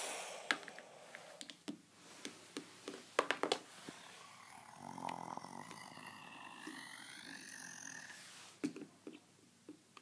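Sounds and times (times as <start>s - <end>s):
child growling: 3.9s - 8.3s.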